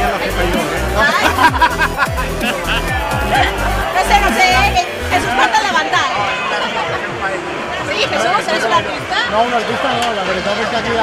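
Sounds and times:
crowd chatter: 0:00.0 - 0:11.0
people talking over one another: 0:00.0 - 0:11.0.

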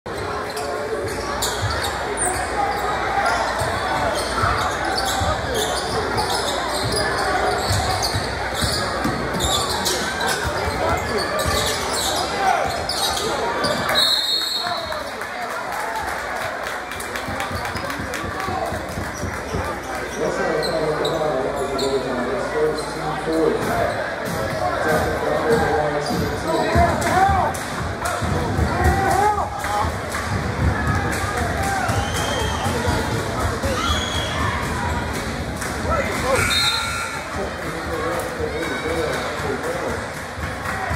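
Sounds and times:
crowd chatter: 0:00.0 - 0:40.9
sneakers squeaking on hardwood: 0:00.1 - 0:14.2, 0:26.0 - 0:26.4
voices echoing in gym: 0:00.1 - 0:40.9.

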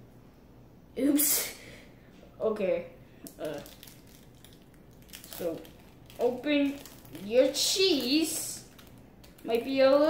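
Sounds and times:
plastic wrapper crinkling: 0:03.2 - 0:10.0.

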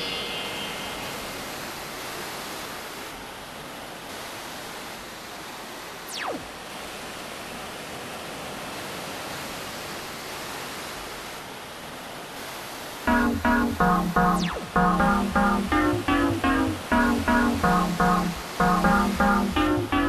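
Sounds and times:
falling synth zap: 0:13.1 - 0:20.0
synthesized surf-like wash: 0:13.1 - 0:20.0.

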